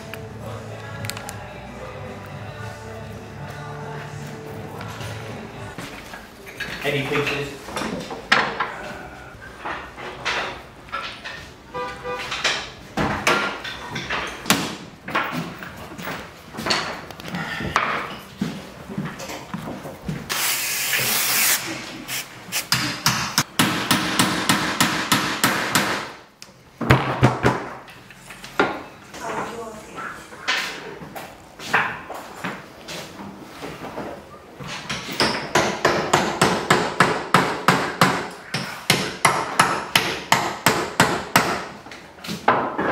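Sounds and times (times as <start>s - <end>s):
aerosol spray can hissing: 20.3s - 22.8s
wooden knocks and clatter: 41.9s - 42.9s.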